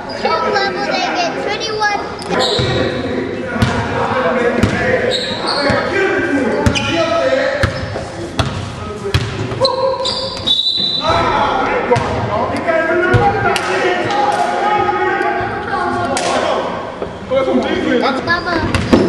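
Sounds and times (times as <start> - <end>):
players calling out: 9.5 - 19.0.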